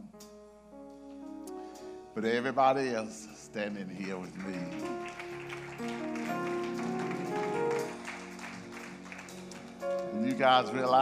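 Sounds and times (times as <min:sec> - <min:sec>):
sustained keyboard chords: 0:00.0 - 0:11.0
hand clapping: 0:03.8 - 0:10.5.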